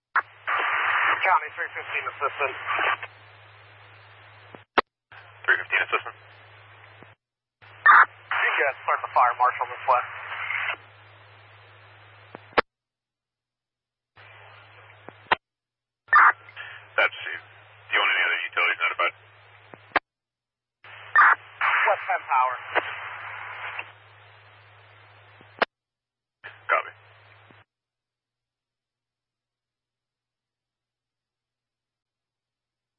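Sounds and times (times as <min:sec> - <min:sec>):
radio squelch click: 0:00.2 - 0:03.2, 0:12.2 - 0:12.7, 0:14.9 - 0:15.4, 0:19.0 - 0:20.0, 0:20.9 - 0:24.0
garbled radio voices: 0:00.2 - 0:03.4, 0:04.0 - 0:10.9, 0:16.1 - 0:20.0, 0:20.9 - 0:24.0, 0:26.4 - 0:27.5
low radio hum: 0:00.2 - 0:12.7, 0:14.2 - 0:15.4, 0:16.1 - 0:20.0, 0:20.8 - 0:25.7, 0:26.4 - 0:27.7.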